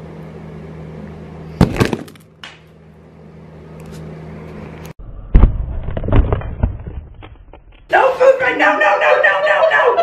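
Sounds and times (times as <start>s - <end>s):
brick crushing gingerbread house: 1.6s - 2.3s, 5.3s - 7.9s.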